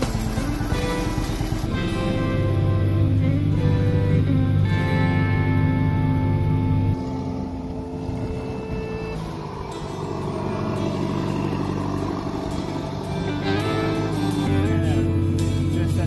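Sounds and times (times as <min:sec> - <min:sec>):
forage harvester working: 0:00.0 - 0:16.0
music: 0:00.0 - 0:16.0
tractor engine running: 0:00.0 - 0:16.0.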